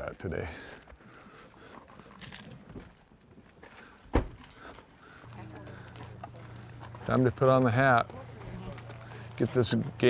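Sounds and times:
faint jingling: 0:02.0 - 0:02.7, 0:04.4 - 0:04.8
car door slamming: 0:04.1 - 0:04.4.

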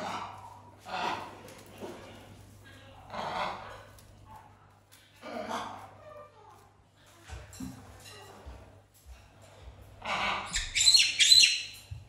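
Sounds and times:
parrot squawking: 0:10.1 - 0:11.8.

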